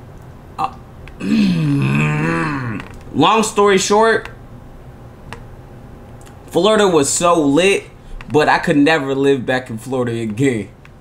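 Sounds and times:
man burping: 0.6 - 3.0.

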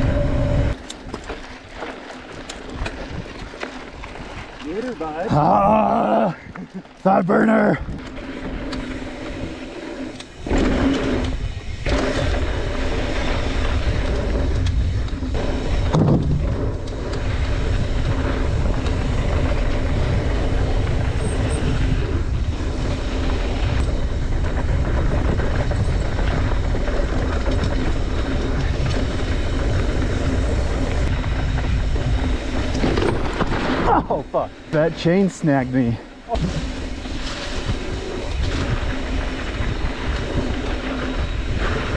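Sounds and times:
wind on microphone: 0.0 - 0.8, 7.8 - 34.4, 35.6 - 41.9
bike tyres rolling on gravel: 0.0 - 41.9.

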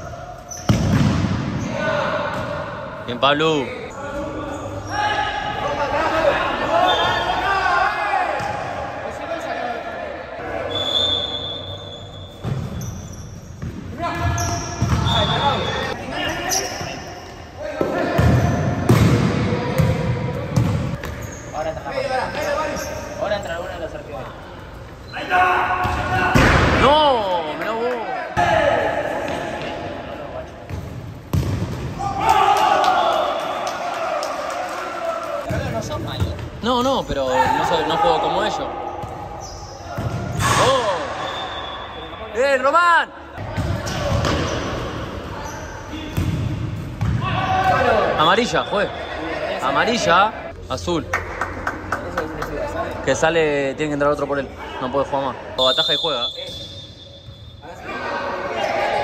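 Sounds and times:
players shouting: 4.0 - 11.6, 25.1 - 30.2, 31.9 - 35.8, 37.2 - 46.2, 47.1 - 50.3
short high squeaks: 10.8 - 13.6
ball kicked and bouncing: 30.7 - 31.9.

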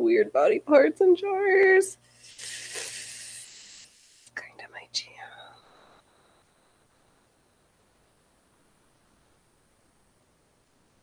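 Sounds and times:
woman whispering: 4.4 - 5.7.

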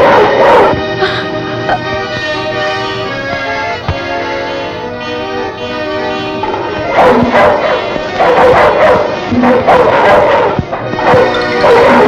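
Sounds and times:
dog barking loudly: 0.0 - 0.8, 6.9 - 12.0.

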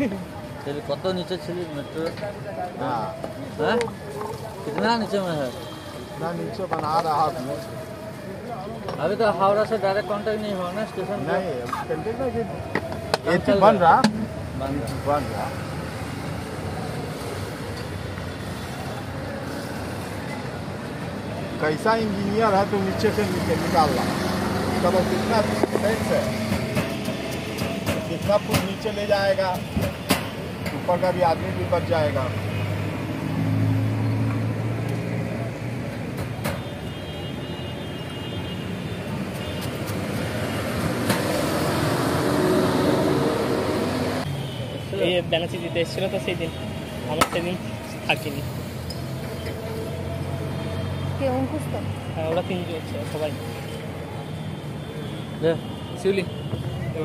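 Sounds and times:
road traffic noise: 0.0 - 57.0
voices: 0.0 - 57.0
large vehicle passing: 40.0 - 44.3.

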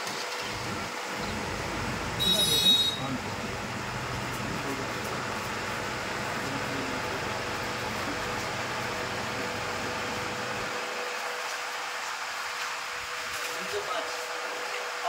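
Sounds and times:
aquarium pump hum: 0.0 - 15.0.

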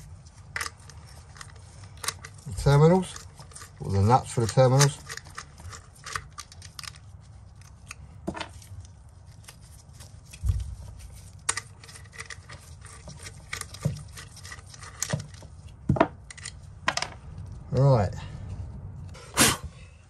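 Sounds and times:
hardware clicks and rattles: 0.4 - 7.0.

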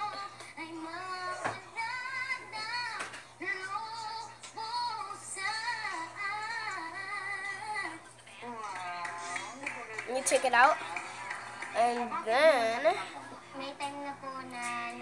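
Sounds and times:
woman singing: 0.0 - 15.0.

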